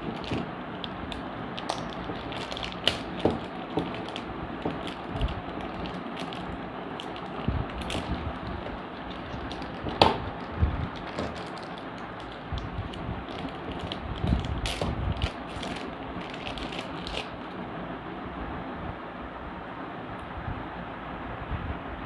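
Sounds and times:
plastic bag crinkling: 0.0s - 17.6s.

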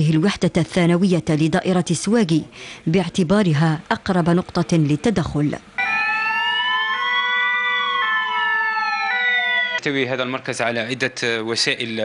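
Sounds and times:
two-tone siren: 5.8s - 9.8s
wailing siren: 5.8s - 9.8s.

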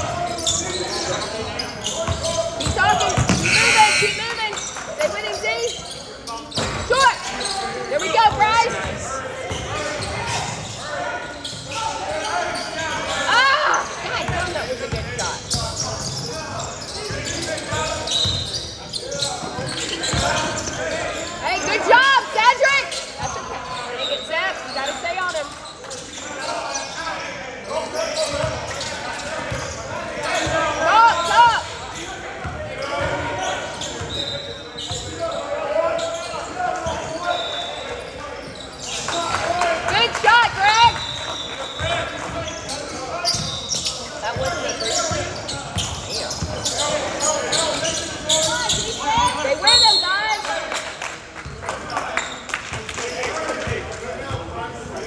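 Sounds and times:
sneakers squeaking on floor: 0.0s - 39.4s, 40.3s - 50.5s
players' voices echoing: 0.0s - 55.0s
basketball bouncing: 2.0s - 4.3s.

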